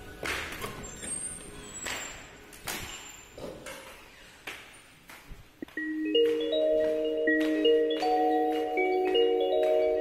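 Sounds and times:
mallet percussion music: 5.8s - 10.0s.

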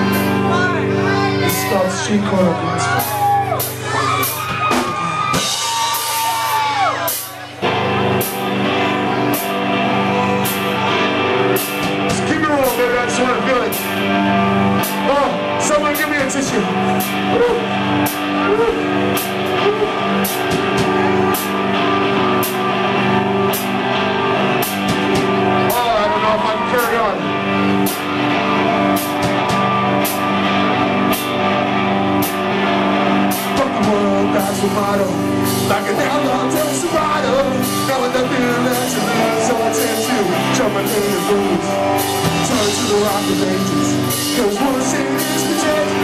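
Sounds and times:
drum kit beat with cymbals: 0.0s - 46.0s
electric guitar chords: 0.0s - 46.0s
punk rock band playing: 0.0s - 46.0s
person singing: 6.2s - 11.7s, 16.5s - 17.8s, 18.4s - 23.4s, 33.3s - 46.0s.

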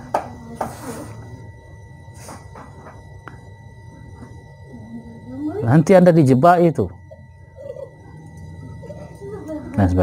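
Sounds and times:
low steady background hum: 0.0s - 10.0s
thin electrical whine: 0.0s - 10.0s.

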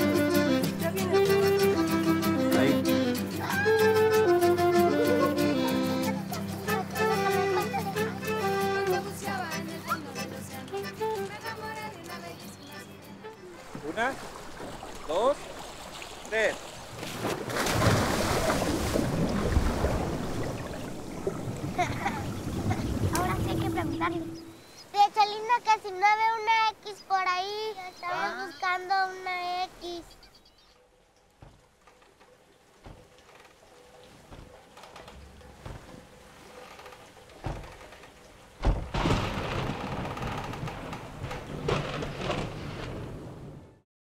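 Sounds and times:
diver splashing into water: 13.6s - 23.7s
rush of bubbles and churning water: 13.6s - 24.1s
heavy rain falling: 37.4s - 43.6s.

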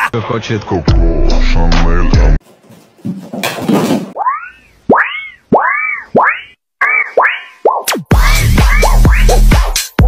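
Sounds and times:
cartoon springy boings: 4.2s - 9.6s.

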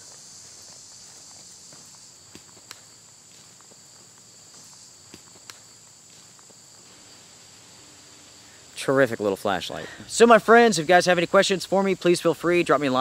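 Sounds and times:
footsteps on grass: 0.0s - 8.0s
insects chirping: 0.0s - 13.0s.

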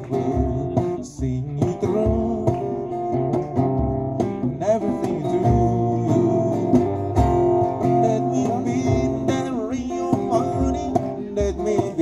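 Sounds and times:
man singing: 0.0s - 3.6s, 4.4s - 12.0s
acoustic guitars strummed: 0.0s - 12.0s
djembe drumming: 0.0s - 12.0s.

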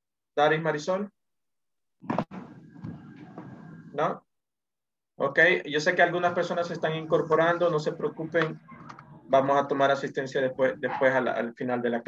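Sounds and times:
room noise: 2.0s - 4.2s, 5.2s - 11.8s.

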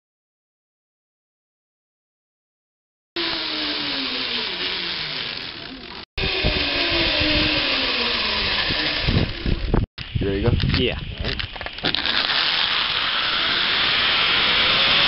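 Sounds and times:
zipline pulleys whirring: 3.2s - 9.8s, 11.6s - 15.0s
rushing wind noise: 6.2s - 11.6s
wind buffeting microphone: 6.2s - 11.7s.

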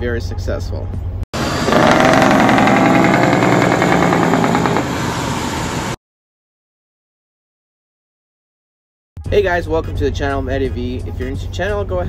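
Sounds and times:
loud engine rattling: 1.4s - 6.0s.

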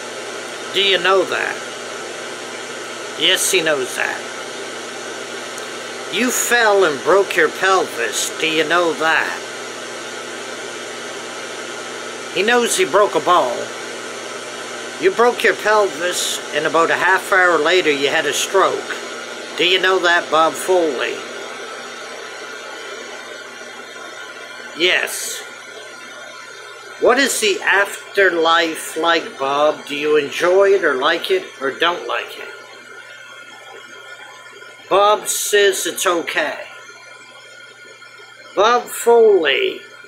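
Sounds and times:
radio static hiss: 0.0s - 40.0s.

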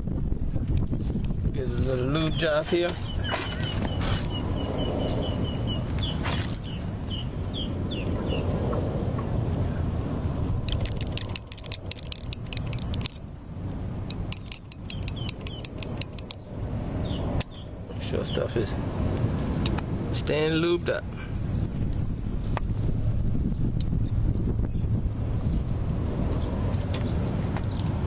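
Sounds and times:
steady low rumble: 0.0s - 28.0s
metal tool clicking and scraping gear: 10.7s - 13.2s, 14.1s - 16.4s.

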